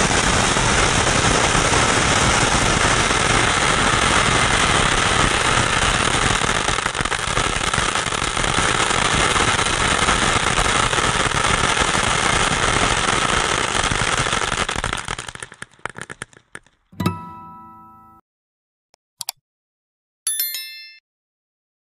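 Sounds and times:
firework crackling: 0.0s - 16.9s.

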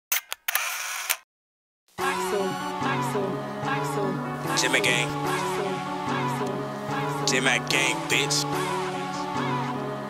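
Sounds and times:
camera shutter clicks: 0.1s - 1.2s
camera whirring: 0.1s - 1.2s.

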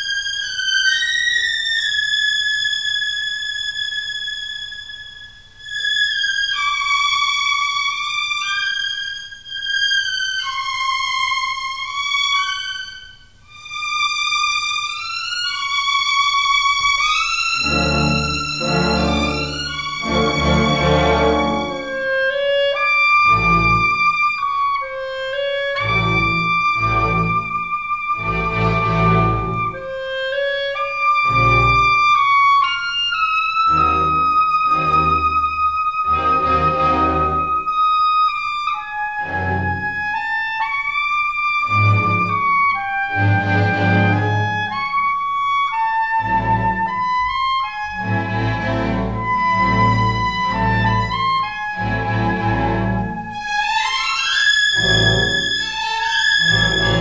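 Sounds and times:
orchestral film score music: 17.6s - 22.3s, 47.9s - 53.5s, 54.8s - 57.0s.

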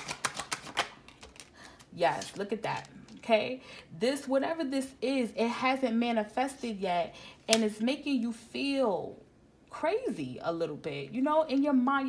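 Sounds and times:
cards shuffled by hand: 0.0s - 3.0s.

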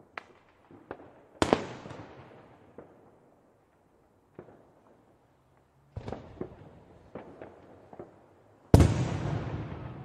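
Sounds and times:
fireworks bangs: 6.0s - 10.0s
loud echoing firework bang: 8.8s - 10.0s.

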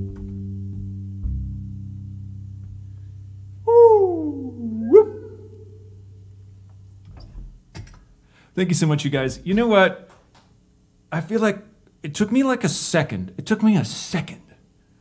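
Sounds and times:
upright bass low notes: 0.0s - 7.6s
sung vocal swoop: 3.6s - 6.0s.

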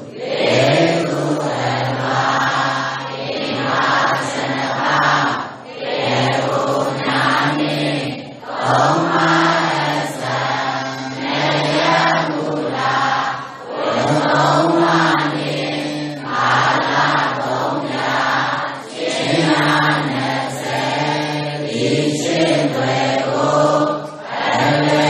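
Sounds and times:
voices chanting in unison: 0.0s - 25.0s.

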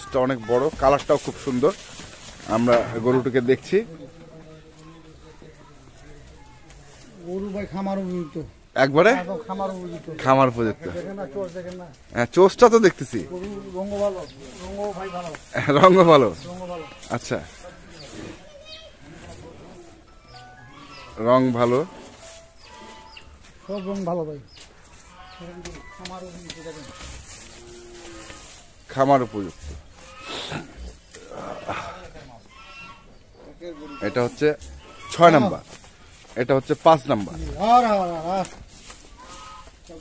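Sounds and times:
bulls making noisy sounds: 29.2s - 35.4s.

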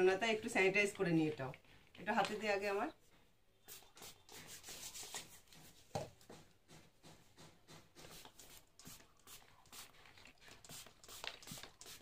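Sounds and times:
hands rubbing on skin: 3.7s - 5.4s.

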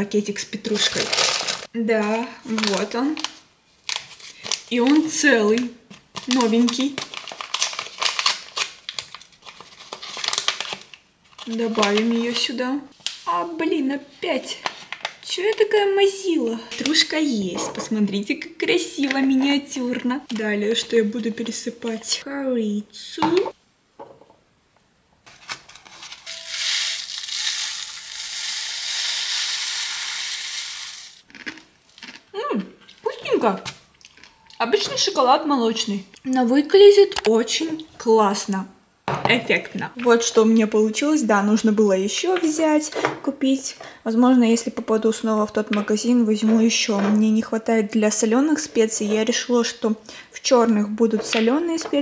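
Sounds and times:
plastic sachet crinkling and tearing: 0.8s - 1.7s, 2.4s - 12.4s
sprinkles pouring into glass jar: 26.2s - 31.2s.

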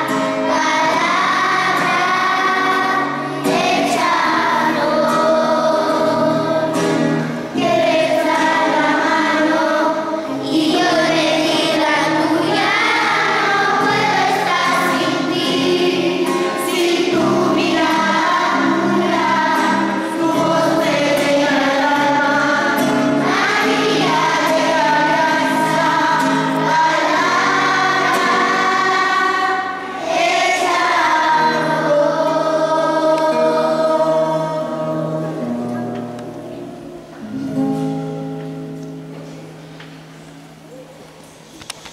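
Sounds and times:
children singing a hymn: 0.0s - 40.6s
acoustic guitar: 0.0s - 41.9s.

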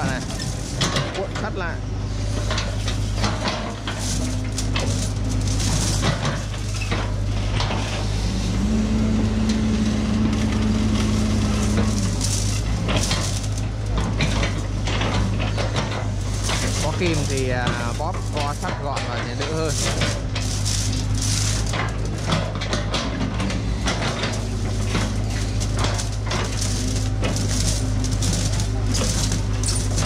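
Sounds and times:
metal clanks and scraping: 0.0s - 8.2s, 10.3s - 30.0s
diesel engine running: 0.0s - 30.0s.

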